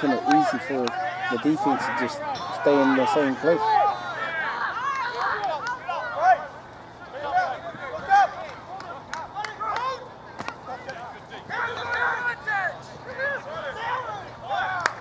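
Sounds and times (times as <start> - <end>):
players shouting: 0.0 - 15.0.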